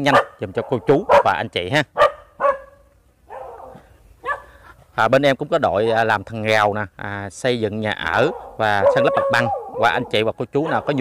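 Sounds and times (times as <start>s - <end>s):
dog barking: 0.0s - 1.4s, 2.0s - 4.6s, 8.1s - 11.0s.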